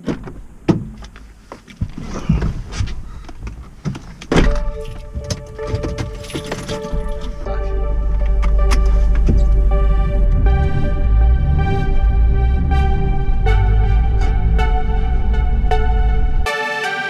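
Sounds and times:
car door slamming: 0.0 - 7.5
clicks and rustles in car: 0.0 - 7.6
music with heavy bass: 4.3 - 16.6.

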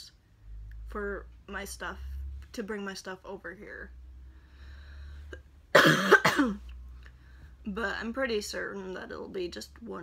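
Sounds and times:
woman coughing: 5.7 - 6.7.

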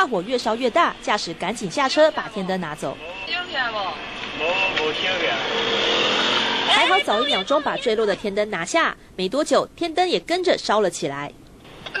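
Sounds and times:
street traffic passing: 0.0 - 12.0.

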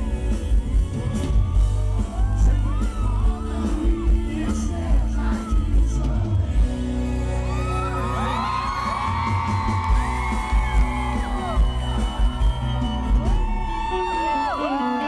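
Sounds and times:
live concert music through pa: 0.0 - 15.0.

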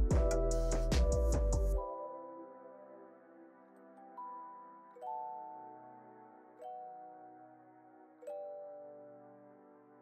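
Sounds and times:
soft bell-like chord: 0.0 - 10.0.

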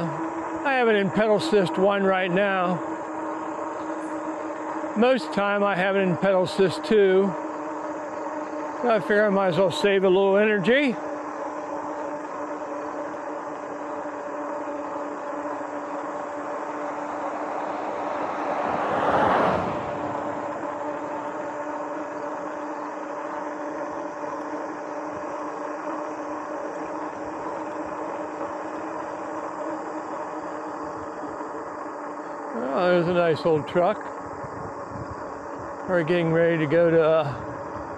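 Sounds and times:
electric motor hum: 0.0 - 37.9
wind and tyre roar: 11.0 - 37.9.

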